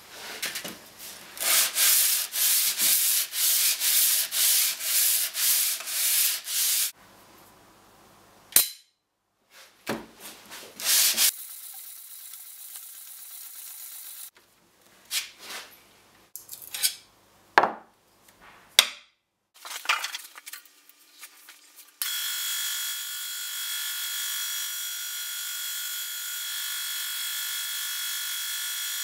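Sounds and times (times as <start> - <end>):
metal scraping on sandpaper: 1.4 - 6.9
magnet snapping onto metal: 8.5 - 8.9.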